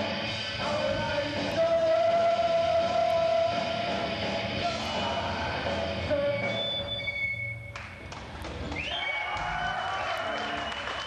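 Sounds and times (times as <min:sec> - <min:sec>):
rock band playing live: 0:00.0 - 0:07.1.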